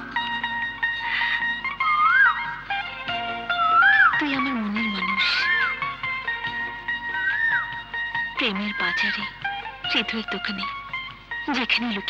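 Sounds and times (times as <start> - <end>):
film score with gliding melody: 0.0 - 12.0.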